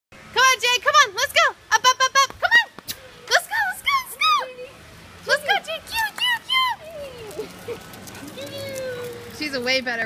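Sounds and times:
high-pitched excited cries: 1.8 - 4.7, 6.2 - 9.4.

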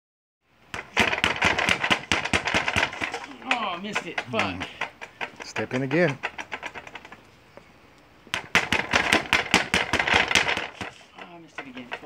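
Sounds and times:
gloves punching reflex bag: 0.7 - 3.3, 8.3 - 11.1.

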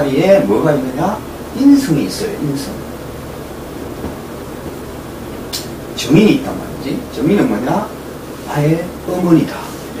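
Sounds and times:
faint low hum: 0.0 - 10.0
recording noise hiss: 0.0 - 10.0.

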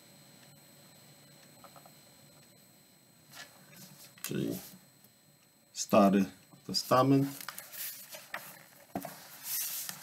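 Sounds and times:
book pages rustling: 7.3 - 10.0.

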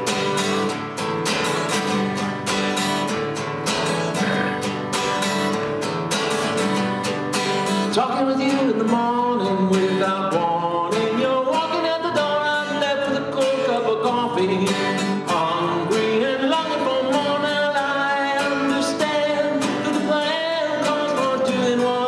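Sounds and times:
strummed acoustic guitar: 0.0 - 22.0
man singing: 7.8 - 22.0.

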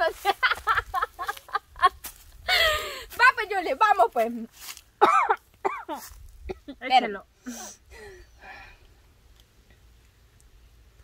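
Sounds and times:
woman laughing: 0.0 - 3.1.

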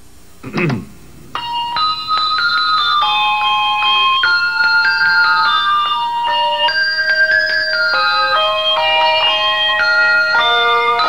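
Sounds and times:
handbell chimes slow melody: 1.4 - 11.0.

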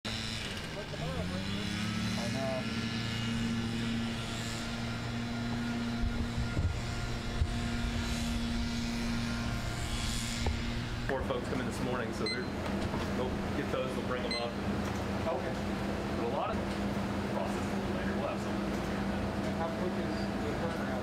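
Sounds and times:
motor engine hum: 0.0 - 21.0
outdoor ambience: 0.1 - 21.0.

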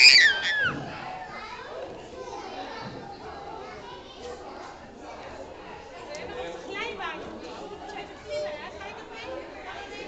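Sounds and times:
babble of children and people talking: 0.0 - 10.0.

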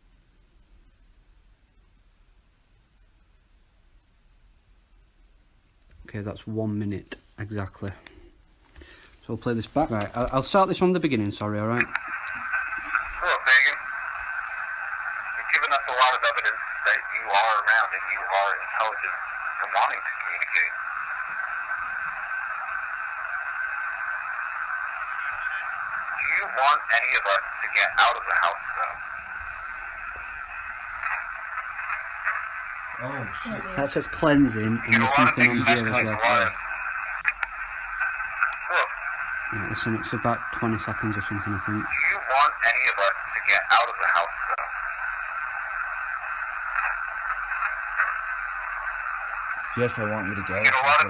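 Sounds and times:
thin hiss from small speaker: 0.0 - 51.0.

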